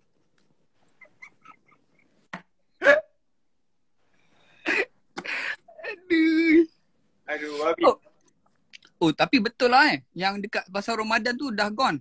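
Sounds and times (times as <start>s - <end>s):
high-pitched yelps of laughter: 1.0s - 2.2s.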